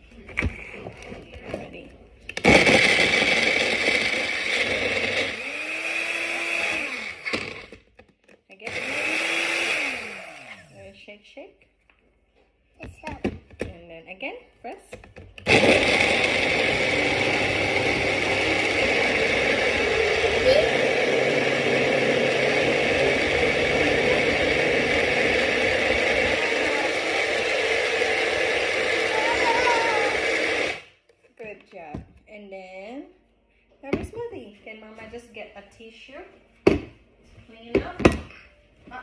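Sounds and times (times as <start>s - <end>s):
blender motor running: 2.4s - 7.8s, 8.7s - 10.8s, 15.4s - 30.9s.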